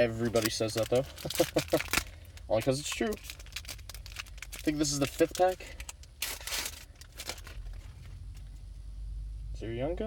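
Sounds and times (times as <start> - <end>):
foil wrapper tearing and crinkling: 0.2 - 8.0.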